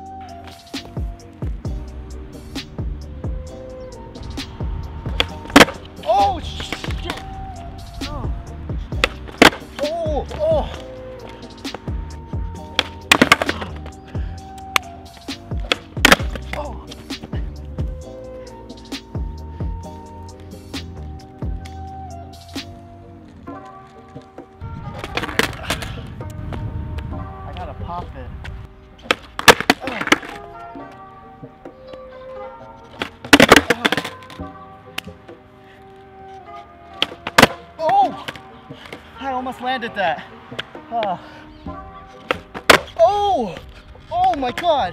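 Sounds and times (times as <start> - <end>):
synth background music: 0.0 - 27.9
skateboard tail popping: 4.4 - 7.4, 8.0 - 17.3, 23.3 - 27.1, 28.4 - 31.0, 32.9 - 35.2, 36.9 - 39.0, 41.7 - 44.7
skateboard clattering on concrete: 5.1 - 5.9, 9.0 - 10.8, 12.7 - 13.9, 15.6 - 16.6, 24.9 - 26.0, 29.0 - 30.4, 32.9 - 34.4, 37.0 - 39.0, 42.2 - 44.8.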